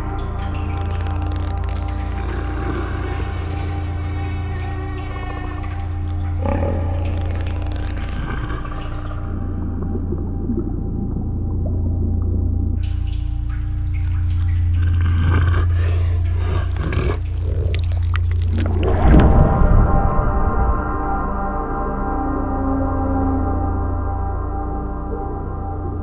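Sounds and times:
deep low drone: 0:00.0 - 0:26.0
layered sustained tones: 0:00.0 - 0:26.0.

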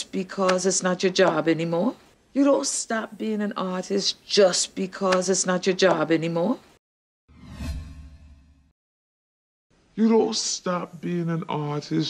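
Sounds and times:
whoosh swish: 0:07.3 - 0:08.5.

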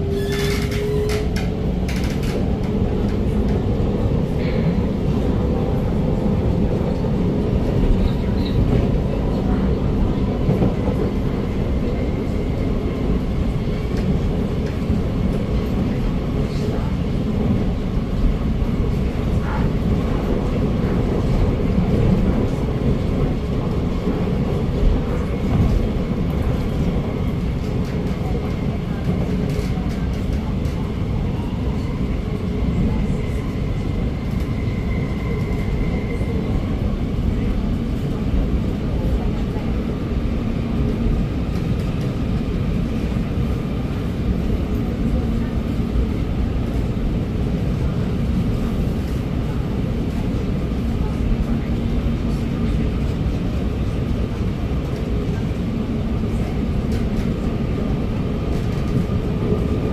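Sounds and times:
train wheels rumbling on rail: 0:00.0 - 0:59.9.

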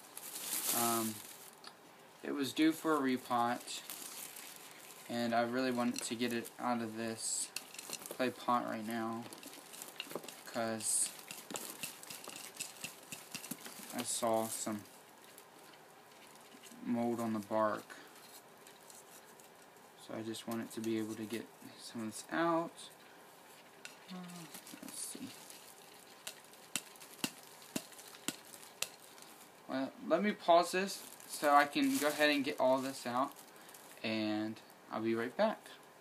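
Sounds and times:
bark chips clicking and crackling: 0:07.5 - 0:08.2, 0:09.1 - 0:16.8, 0:23.6 - 0:29.4.

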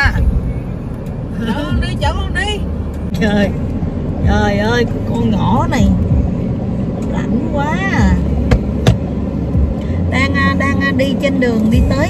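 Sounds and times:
car road rumble: 0:00.0 - 0:12.0.

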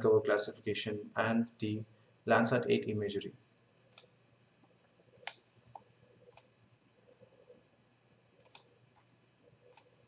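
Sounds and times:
computer mouse clicking: 0:03.9 - 0:04.2, 0:05.1 - 0:07.6, 0:08.4 - 0:10.0.

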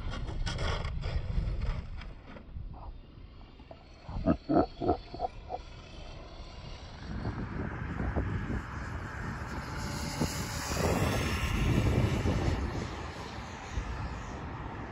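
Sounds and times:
rc car motor and tyre noise: 0:00.0 - 0:14.9.

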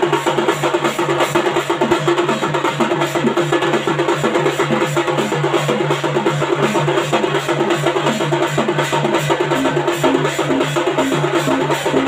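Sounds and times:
cymbals: 0:00.0 - 0:12.0
street drum band playing: 0:00.0 - 0:12.0.

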